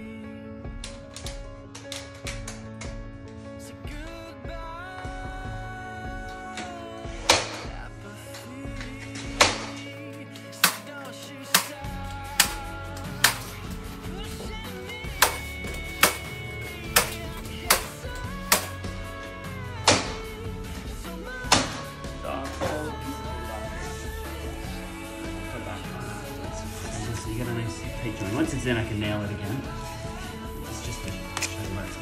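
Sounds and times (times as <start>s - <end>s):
background music: 0.0s - 32.0s
nail gun shots: 7.3s - 7.7s, 9.4s - 9.8s, 10.6s - 13.7s, 15.2s - 18.8s.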